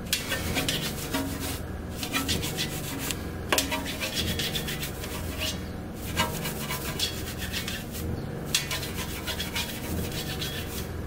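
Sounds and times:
brush scrubbing wheel spokes: 0.0s - 11.0s.

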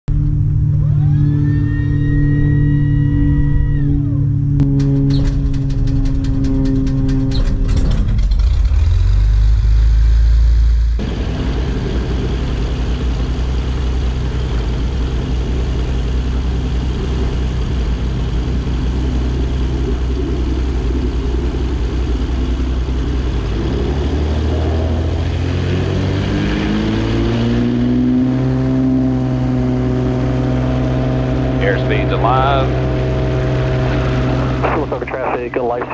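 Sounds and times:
light aircraft piston engine running: 0.1s - 10.2s, 11.0s - 26.1s, 27.8s - 35.9s.

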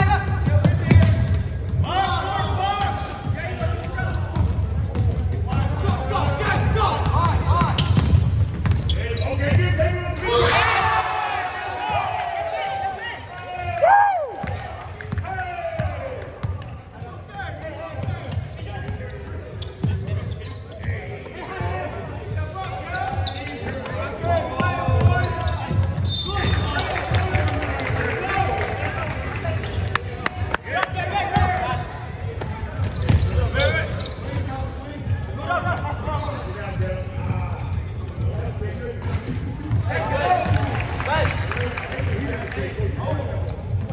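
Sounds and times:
sneakers squeaking on floor: 0.1s - 10.5s, 15.8s - 27.0s, 31.3s - 39.9s, 42.8s - 43.9s
basketball bouncing on court: 0.2s - 2.0s, 2.9s - 9.9s, 23.1s - 27.4s, 31.3s - 38.4s, 39.0s - 40.8s
players shouting: 9.5s - 16.4s.

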